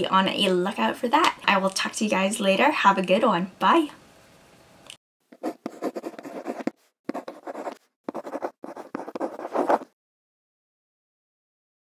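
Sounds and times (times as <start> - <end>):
pen scratching on paper: 5.4 - 10.0.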